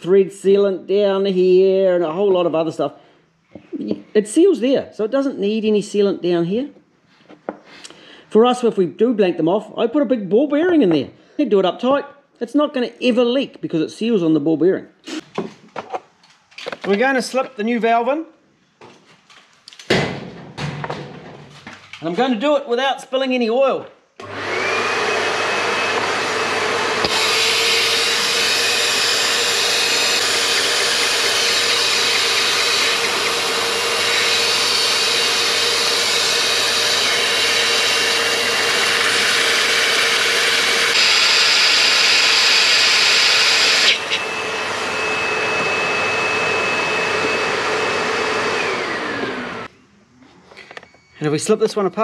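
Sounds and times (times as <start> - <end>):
vacuum cleaner motor whining: 24.2 - 49.7.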